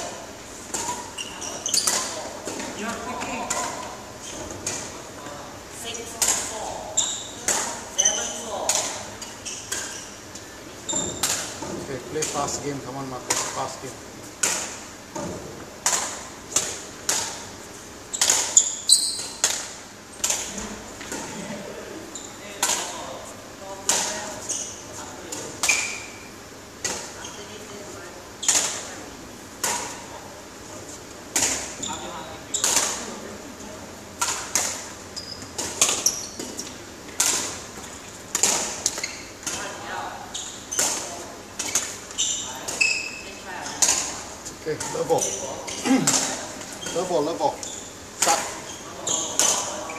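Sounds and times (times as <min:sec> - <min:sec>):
rackets striking shuttlecock: 0:11.0 - 0:12.5, 0:18.2 - 0:21.3, 0:34.2 - 0:39.6.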